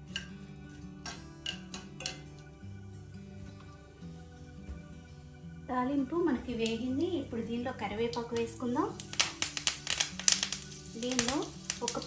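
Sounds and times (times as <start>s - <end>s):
background music: 0.0s - 12.0s
metal spoon clicking on skillet: 0.1s - 0.3s, 1.0s - 2.3s, 8.4s - 12.0s.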